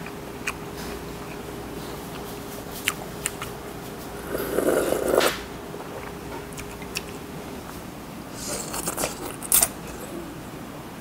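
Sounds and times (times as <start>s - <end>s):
person slurping soup: 4.0s - 6.2s.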